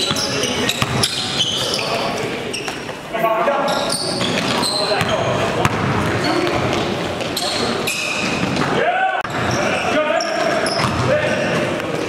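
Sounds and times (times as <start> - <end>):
basketball bouncing: 0.0 - 1.2, 4.2 - 7.4, 10.4 - 11.7
sneakers squeaking on court: 0.0 - 8.7, 9.3 - 12.0
players calling out: 0.0 - 12.0
loud shout: 8.7 - 11.6.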